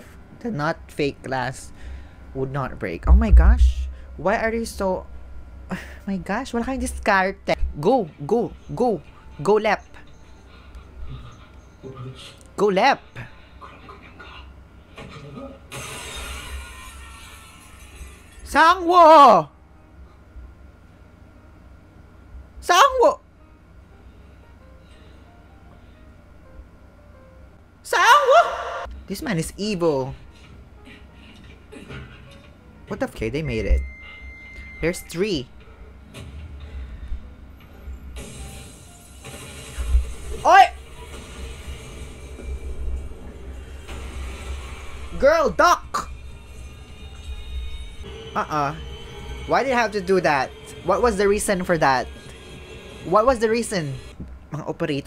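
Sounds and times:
tense soundtrack music: 0.0 - 55.0
low rumble: 3.0 - 5.7.

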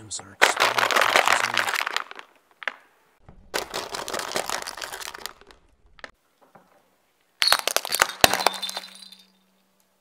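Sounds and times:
plastic cups crunching under tyre: 0.4 - 2.9, 3.5 - 6.1, 7.4 - 9.0.

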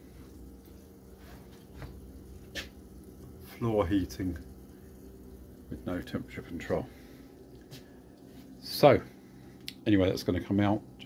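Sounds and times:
heating pumps humming: 0.0 - 11.0.

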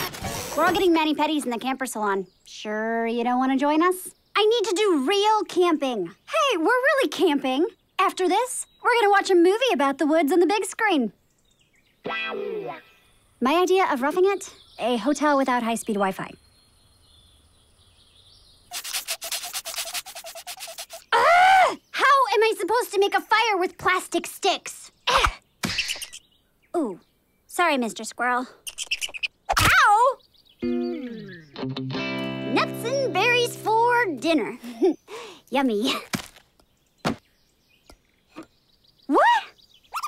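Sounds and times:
plastic sticks scraping rapidly: 18.7 - 21.1.

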